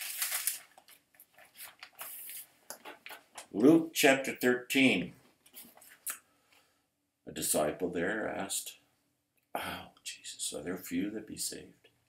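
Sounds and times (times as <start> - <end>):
paper pages rustling: 0.0 - 3.4.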